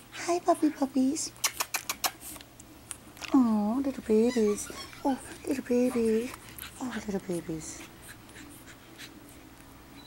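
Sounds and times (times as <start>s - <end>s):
puppies scratching on carpet: 0.0s - 9.6s
faint steady hum: 0.0s - 10.0s.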